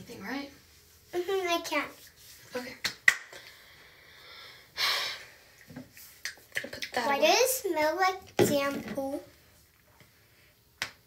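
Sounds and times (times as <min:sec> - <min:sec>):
finger snaps: 0:10.8 - 0:11.0.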